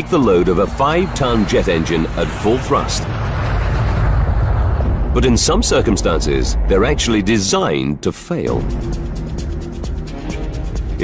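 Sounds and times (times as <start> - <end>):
jet engines at takeoff: 0.0 - 11.0.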